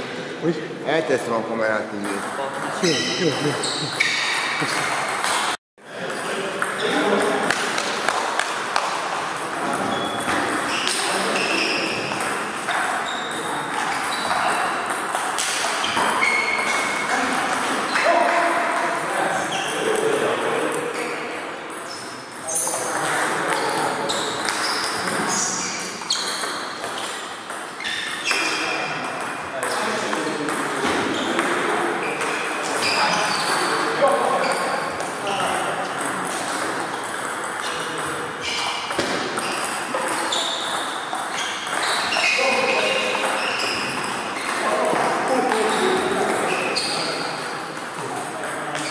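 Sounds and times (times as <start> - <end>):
table tennis balls clicking: 34.4 - 46.6.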